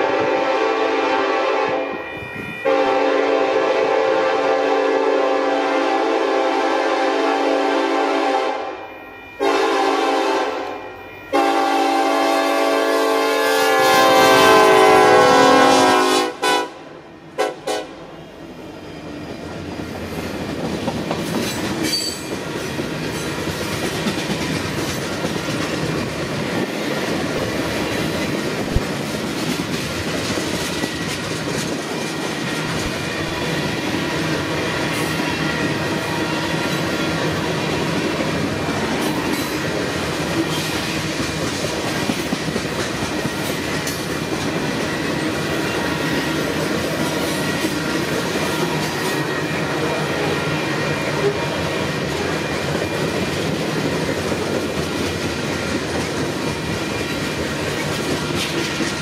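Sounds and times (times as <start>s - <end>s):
train cars rumbling on rails: 0.0s - 8.8s, 9.4s - 59.0s
locomotive horn: 0.0s - 18.1s.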